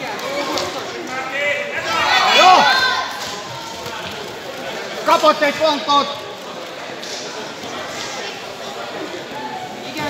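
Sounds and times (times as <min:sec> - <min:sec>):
voices murmuring in echoing hall: 0:00.0 - 0:10.0.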